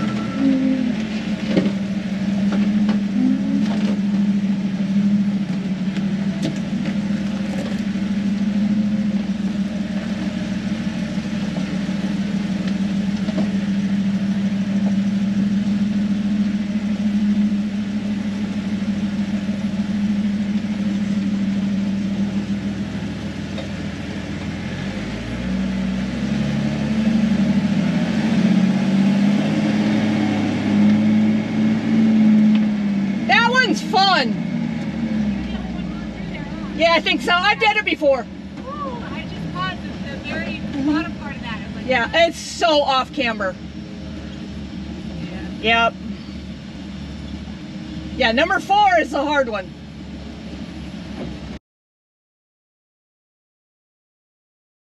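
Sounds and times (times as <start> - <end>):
engine crawling in low gear: 0.0 - 51.6.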